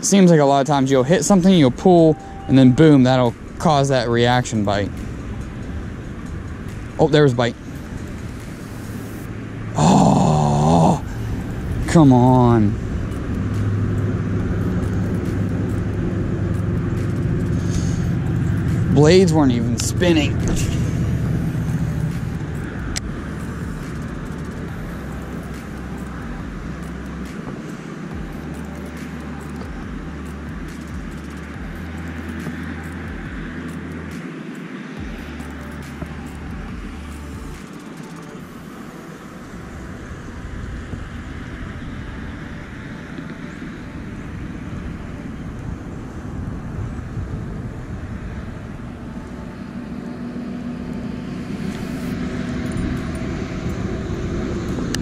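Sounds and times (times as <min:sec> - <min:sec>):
distant road traffic: 0:00.0 - 0:55.0
low rumble: 0:00.7 - 0:27.5, 0:39.3 - 0:55.0.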